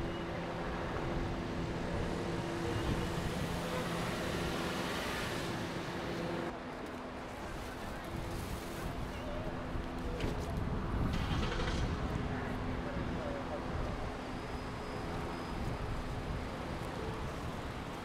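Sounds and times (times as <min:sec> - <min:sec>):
faint indistinct voices: 0:06.7 - 0:15.7.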